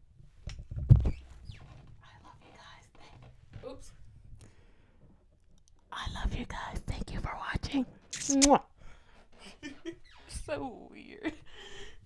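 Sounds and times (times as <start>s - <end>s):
woman whispering: 2.0s - 3.3s, 5.9s - 8.5s.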